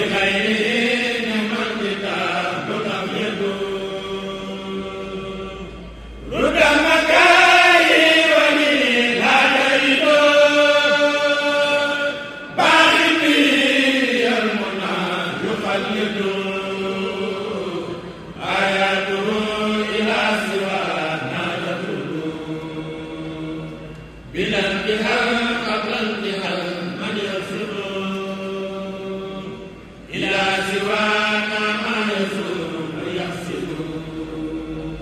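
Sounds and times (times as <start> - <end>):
men chanting: 0.0 - 35.0.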